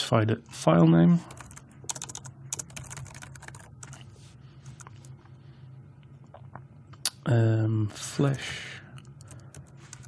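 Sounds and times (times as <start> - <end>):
typing on computer keyboard: 1.3 - 4.0, 9.2 - 10.0.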